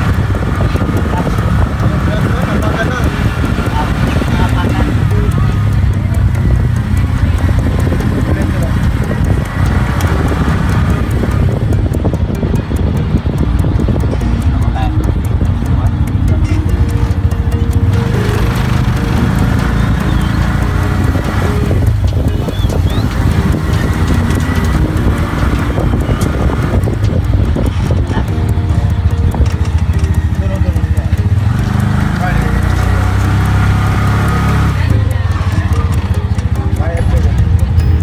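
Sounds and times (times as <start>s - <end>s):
vehicle engine and road noise: 0.0s - 38.0s.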